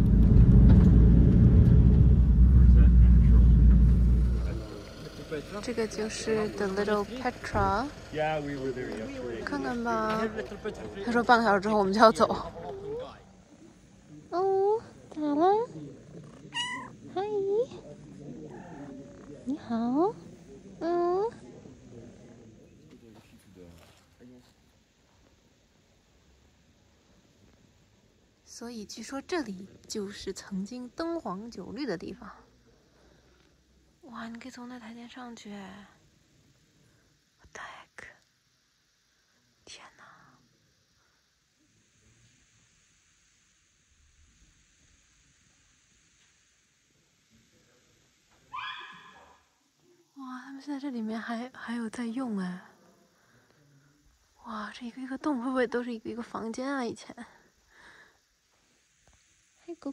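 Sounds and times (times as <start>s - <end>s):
cat meowing: 16.5s - 17.0s.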